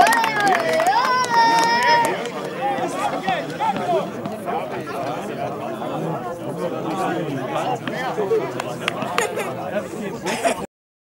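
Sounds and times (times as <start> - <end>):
people chattering: 0.0 - 10.7.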